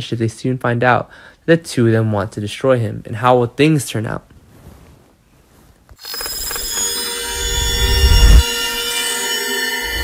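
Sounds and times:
electronic sting ringing tones: 6.0s - 10.0s.

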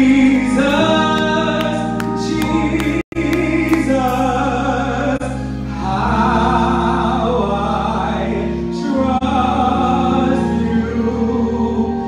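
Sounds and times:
man singing gospel into microphone: 0.0s - 12.0s.

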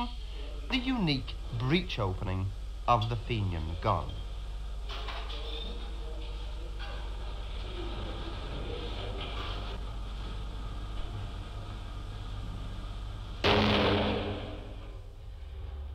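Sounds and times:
film soundtrack hum and hiss: 0.0s - 15.9s
shotgun shot: 13.4s - 14.9s.

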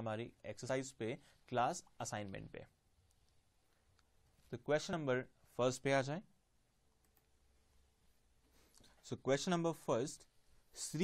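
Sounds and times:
man speaking: 0.0s - 2.8s, 4.4s - 6.4s, 9.0s - 11.0s
faint steady hum: 0.0s - 11.0s.

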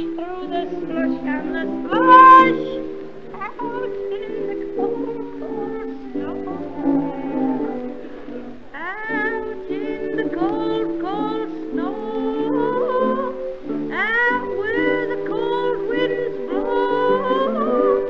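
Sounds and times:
band playing sustained chords: 0.0s - 17.8s
swooping upward slides: 0.3s - 3.0s.

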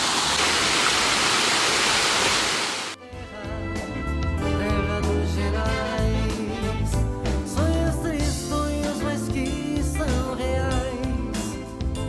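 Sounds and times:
water rushing down waterfall: 0.0s - 3.0s
background music: 3.0s - 12.0s.

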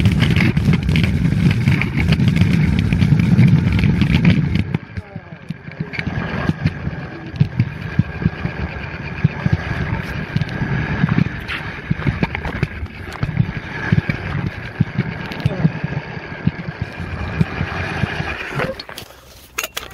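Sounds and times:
scooter wheels rumbling on concrete: 0.0s - 19.9s.

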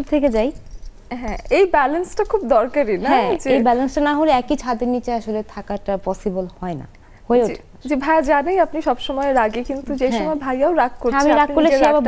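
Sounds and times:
woman speaking: 0.0s - 12.0s.

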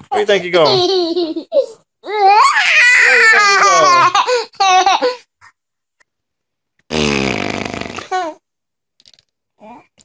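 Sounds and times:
fart: 6.9s - 8.2s.

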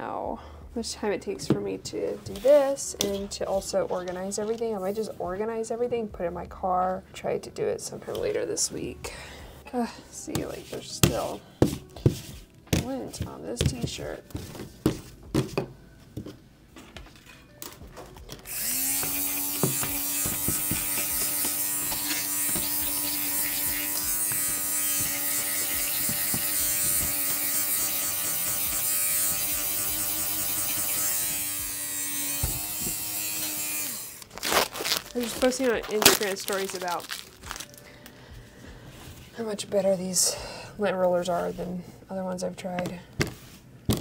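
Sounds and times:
electric fabric shaver running: 18.5s - 37.6s.

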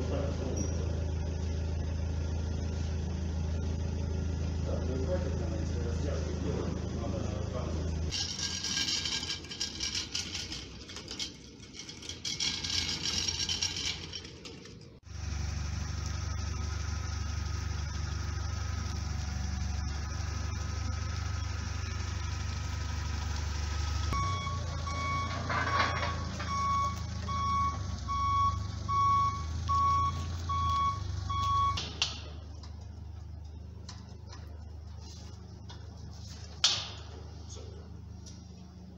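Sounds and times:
forklift engine hum: 0.0s - 38.9s
reversing alarm beeping: 23.7s - 31.9s.

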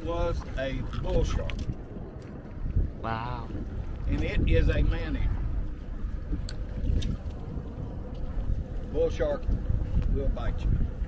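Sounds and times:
low rumble: 0.0s - 11.0s
wind buffeting microphone: 0.0s - 11.0s.

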